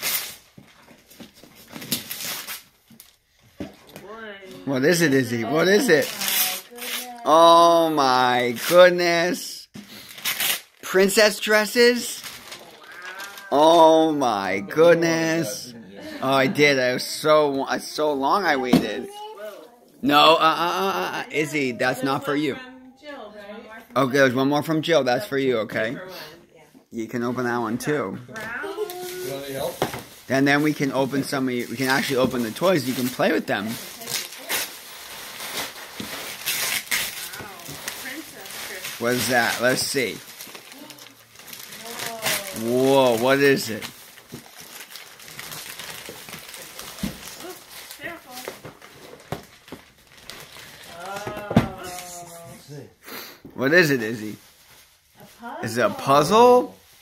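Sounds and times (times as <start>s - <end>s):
wrapping paper ripping: 0.0s - 0.6s, 5.2s - 7.4s, 10.0s - 14.2s, 28.7s - 52.2s
child's high-pitched vocalisation: 6.2s - 7.8s, 12.7s - 13.8s, 19.0s - 19.9s, 28.4s - 29.6s
paper rustling: 11.9s - 13.8s, 28.6s - 52.2s.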